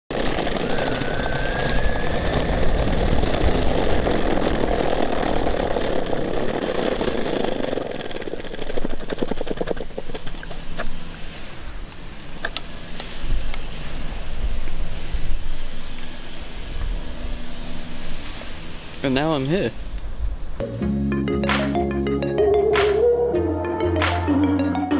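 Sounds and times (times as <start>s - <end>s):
skateboard wheels rumbling on bricks: 0.1s - 11.1s.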